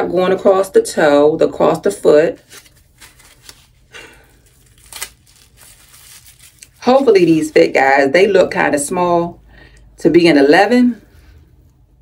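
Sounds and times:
tissue paper crinkling: 2.4 - 7.7.

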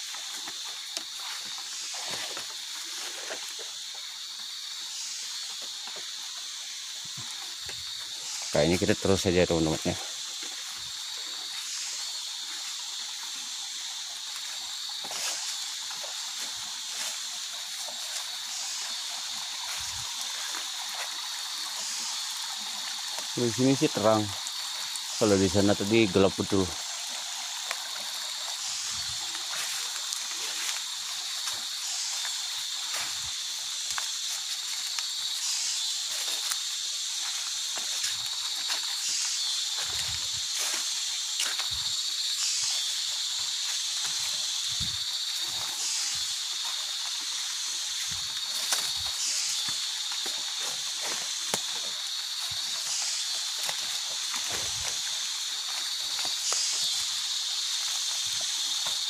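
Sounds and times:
footsteps in wet mud and water: 0.0 - 4.0, 12.3 - 22.0, 28.7 - 59.0
insect chorus shrilling: 0.0 - 59.0.

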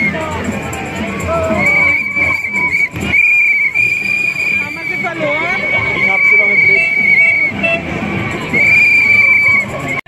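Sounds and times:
shrill whistle blast: 1.6 - 5.1, 5.9 - 7.7, 8.5 - 9.8.

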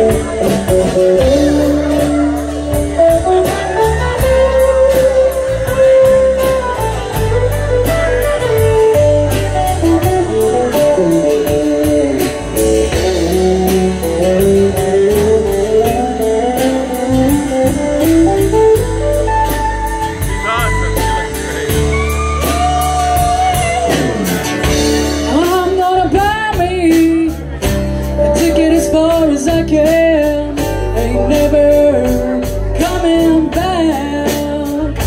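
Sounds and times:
drums with cymbal beats: 0.0 - 35.0
electric guitar lead: 0.0 - 35.0
strummed acoustic guitar: 0.0 - 35.0
walking bass: 0.0 - 35.0.

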